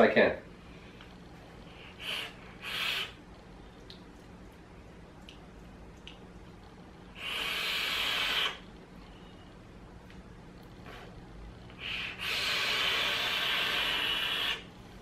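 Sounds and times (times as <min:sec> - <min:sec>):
long hissing exhale: 0:01.7 - 0:03.2, 0:07.1 - 0:08.6, 0:11.8 - 0:14.7.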